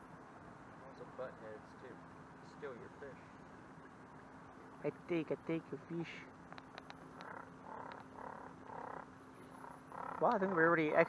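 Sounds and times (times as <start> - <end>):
faint frogs calling: 3.1 - 11.0.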